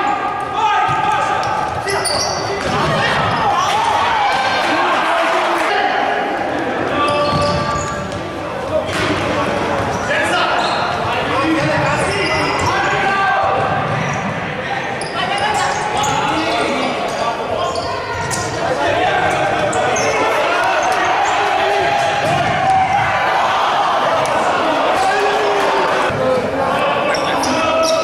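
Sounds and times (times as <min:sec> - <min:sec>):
people shouting in a hall: 0:00.0 - 0:28.0.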